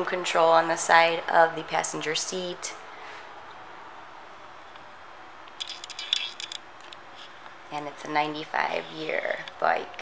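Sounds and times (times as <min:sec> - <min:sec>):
short rustling clicks: 0:05.5 - 0:07.3.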